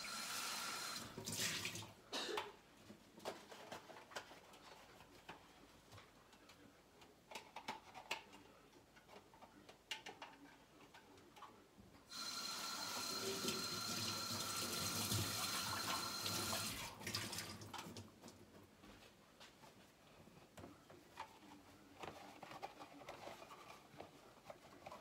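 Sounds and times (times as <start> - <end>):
kitchen tap running: 0.0 - 1.9, 12.1 - 18.0.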